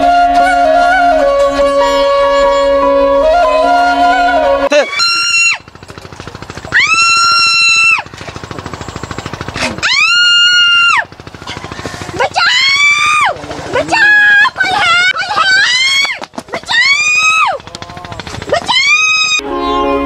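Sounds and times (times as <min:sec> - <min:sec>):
sitar-like music: 0:00.0 - 0:04.8, 0:19.4 - 0:20.0
soft rapid pulsing sound: 0:05.1 - 0:19.4.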